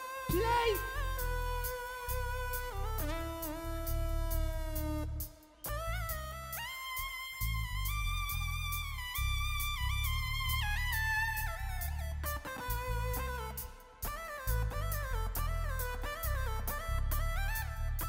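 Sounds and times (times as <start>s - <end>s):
synthesizer lead solo: 0.3s - 1.2s
bass and drums: 0.3s - 18.0s.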